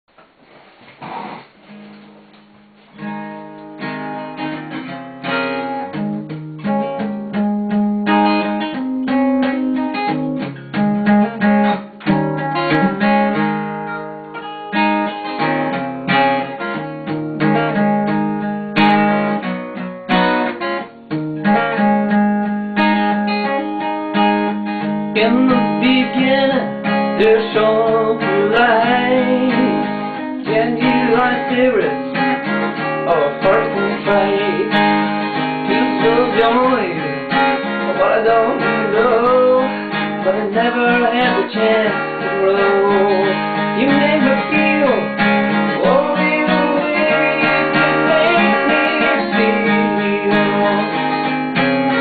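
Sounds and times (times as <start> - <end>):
acoustic guitar chords: 0.1 - 52.0.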